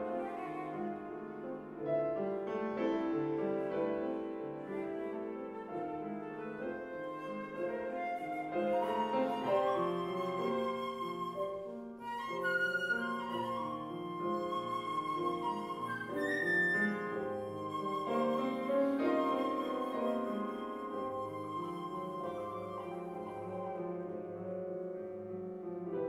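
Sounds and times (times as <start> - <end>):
flute holding long notes: 0.0 - 1.3, 4.6 - 24.5
piano chords: 0.0 - 26.0.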